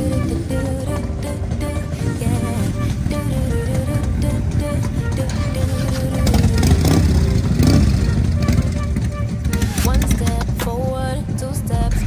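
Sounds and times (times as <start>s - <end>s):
motorcycle engine rumbling: 0.0s - 12.0s.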